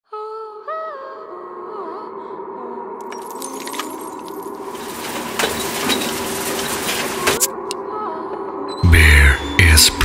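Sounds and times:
metallic jingling and clinking: 0:03.0 - 0:07.5.

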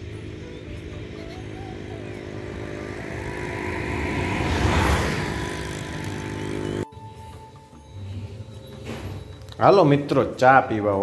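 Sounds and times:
motorcycle passing by: 0:00.0 - 0:06.9.

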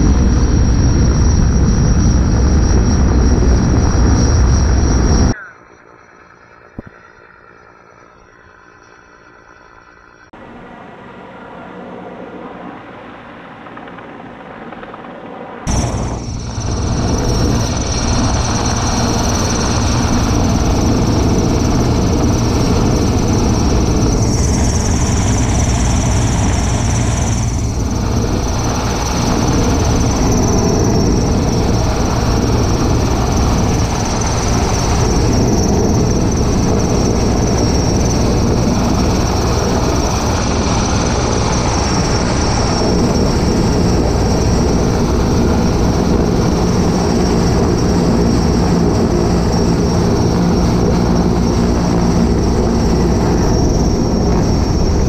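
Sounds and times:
helicopter hovering overhead: 0:00.0 - 0:55.0
high turbine whine: 0:00.0 - 0:55.0.

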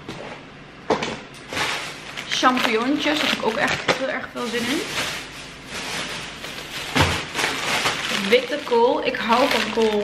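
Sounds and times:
plastic bag crinkling: 0:01.5 - 0:10.0.

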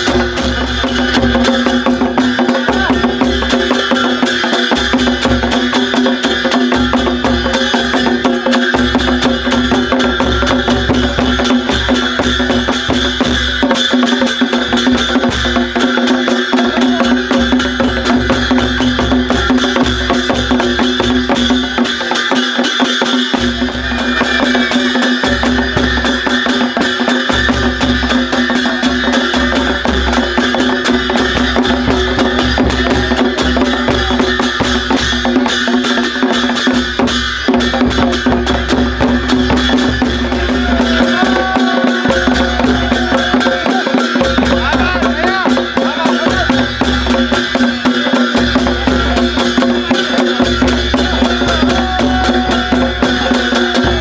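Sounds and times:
brass hand cymbals: 0:00.0 - 0:54.0
folk drumming: 0:00.0 - 0:54.0.

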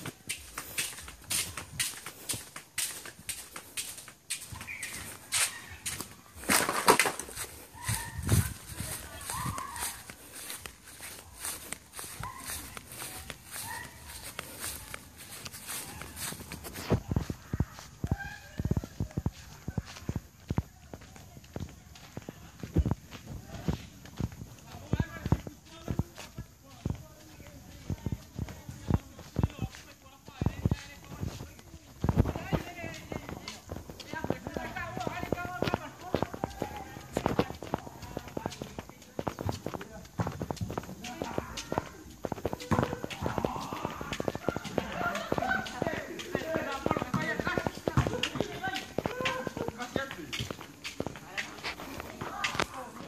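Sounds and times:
footsteps on grass and dirt: 0:00.0 - 0:53.0
indistinct voices: 0:00.0 - 0:53.0.

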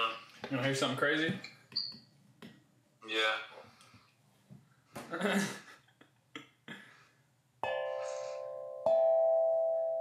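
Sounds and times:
singing bowl ringing: 0:07.6 - 0:10.0.

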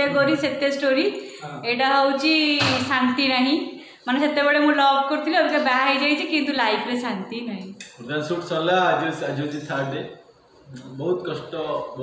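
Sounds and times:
people talking: 0:00.0 - 0:10.1, 0:10.7 - 0:12.0
man talking: 0:01.4 - 0:01.7, 0:08.0 - 0:12.0.

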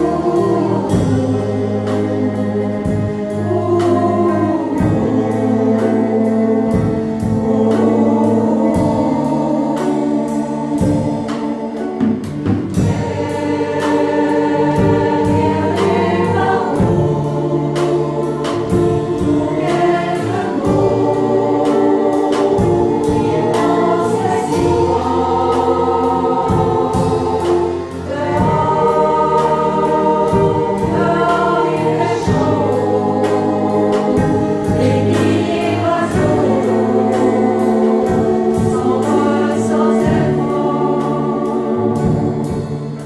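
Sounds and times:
mixed choir singing in harmony: 0:00.0 - 0:43.0.

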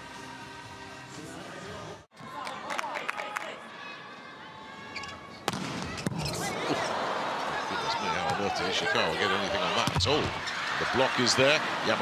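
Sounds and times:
crowd noise: 0:01.3 - 0:12.0
volleyball hits: 0:05.4 - 0:06.3
shoe squeaks: 0:06.0 - 0:06.6.

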